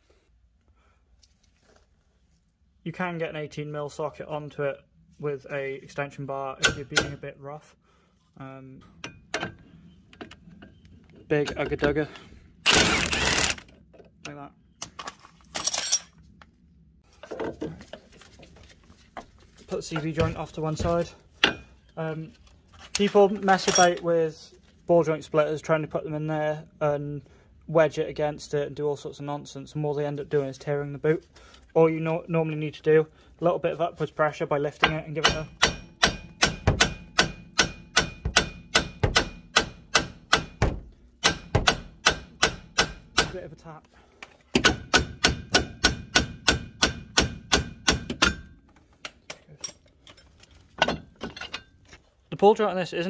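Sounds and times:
steel tools clinking: 0:14.8 - 0:16.2, 0:22.9 - 0:24.1
hammer striking metal: 0:34.8 - 0:43.4, 0:44.6 - 0:48.6.

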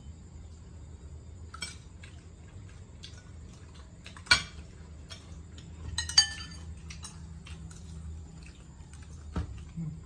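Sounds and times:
spoons clinking against glass bowls: 0:05.9 - 0:07.2.

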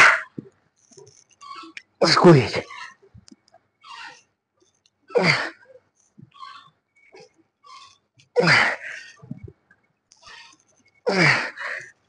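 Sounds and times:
click: 0:03.2 - 0:03.6.

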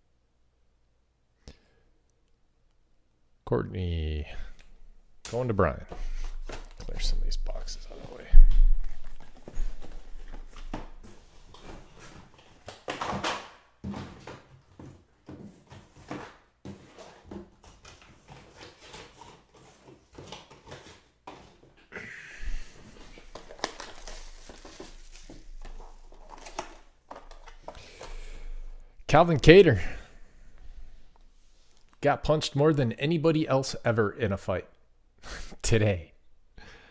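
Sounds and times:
cardboard boxes knocking and rustling: 0:08.6 - 0:21.8.

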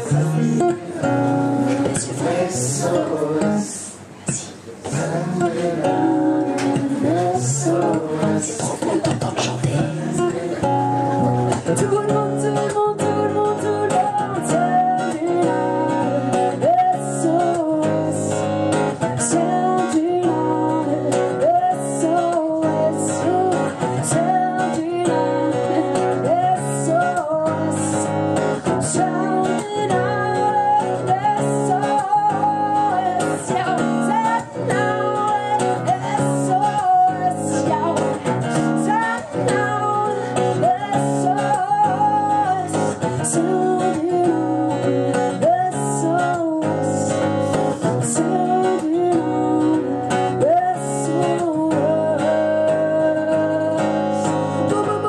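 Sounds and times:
woman singing: 0:00.0 - 0:09.1, 0:09.7 - 0:55.0
strummed acoustic guitar: 0:00.0 - 0:55.0.

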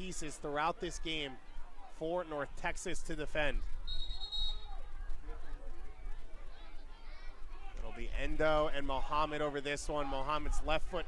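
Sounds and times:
referee's whistle blast: 0:03.9 - 0:04.7.

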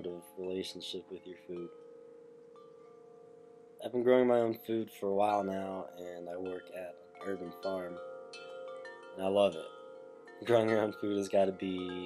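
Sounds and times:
chime-like background music: 0:00.0 - 0:12.0.

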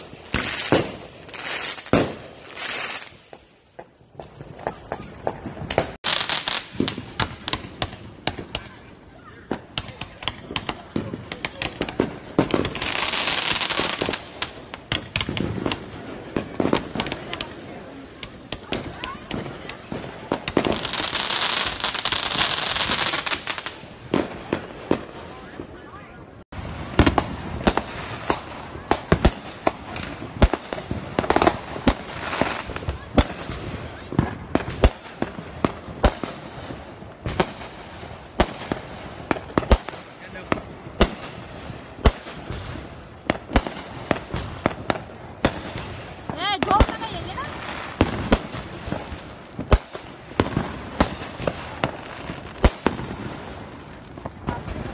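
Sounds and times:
fireworks cracks and bangs: 0:00.0 - 0:54.9.

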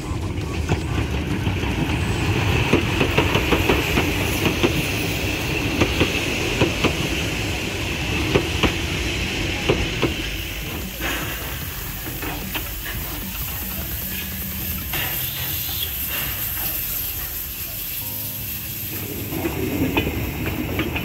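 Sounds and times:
train rumble: 0:00.0 - 0:21.0
train wheels clicking on rail joints: 0:00.0 - 0:21.0.

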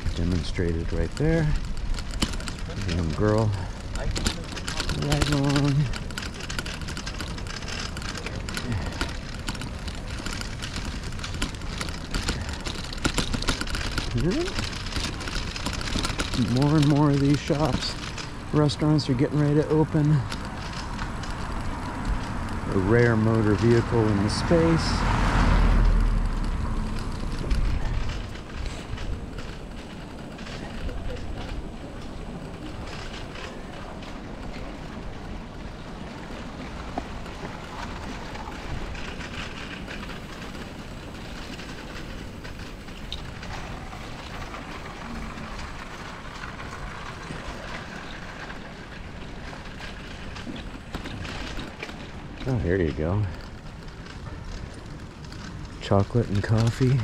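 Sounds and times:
bicycle tyres rolling over bricks: 0:00.0 - 0:57.0
bike rattles and clicks: 0:00.0 - 0:57.0
car driving past: 0:20.8 - 0:28.9.

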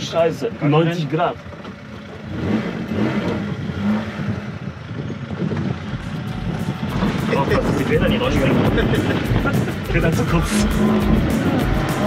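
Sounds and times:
car engine running inside cabin: 0:00.0 - 0:12.0.

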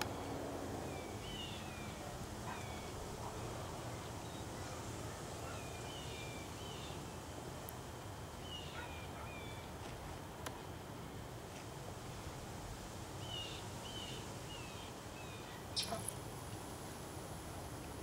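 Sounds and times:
low background noise: 0:00.0 - 0:18.0
birds chirping: 0:13.2 - 0:16.1.

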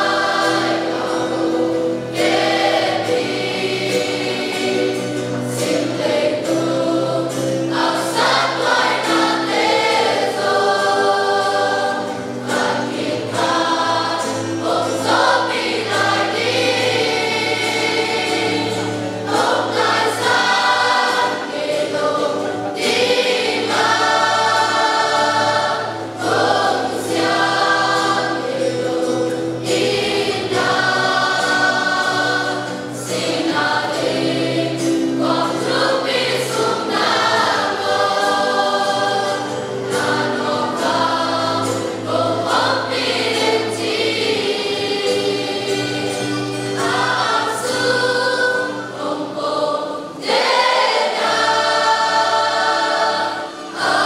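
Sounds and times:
choir singing sustained notes: 0:00.0 - 0:54.0.

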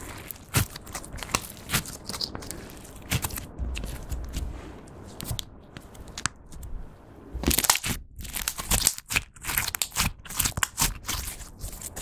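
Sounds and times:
slime crackling and squishing: 0:00.0 - 0:06.7, 0:07.4 - 0:12.0.

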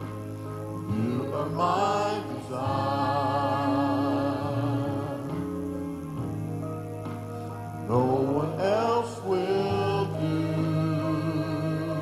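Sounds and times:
voices singing a hymn: 0:00.8 - 0:06.3, 0:07.9 - 0:12.0.

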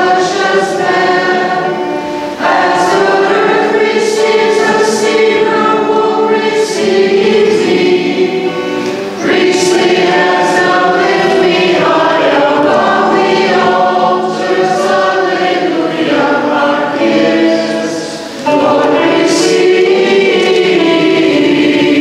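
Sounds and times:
choir singing a hymn: 0:00.0 - 0:22.0.

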